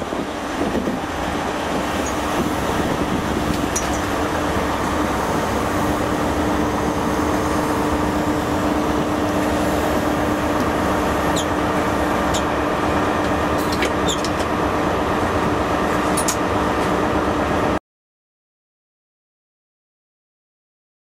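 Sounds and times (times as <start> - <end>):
train rumbling: 0.0 - 17.8.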